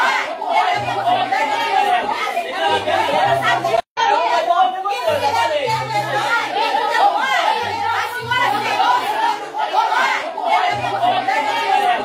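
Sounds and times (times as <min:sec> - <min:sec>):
voices arguing: 0:00.0 - 0:12.0.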